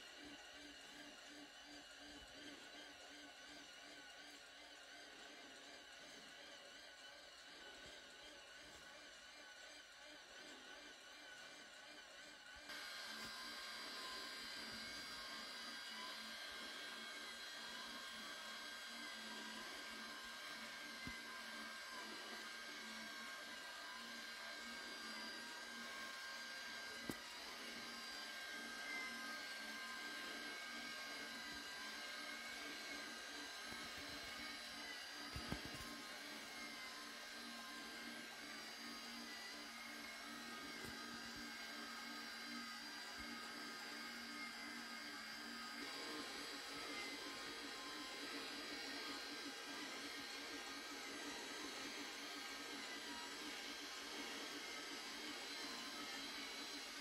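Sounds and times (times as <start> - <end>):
high whine over low hum: 12.7 - 57.0.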